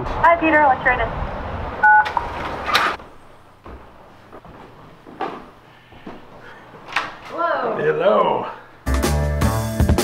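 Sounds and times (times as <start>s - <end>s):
telephone keypad beep: 1.8s - 2.2s.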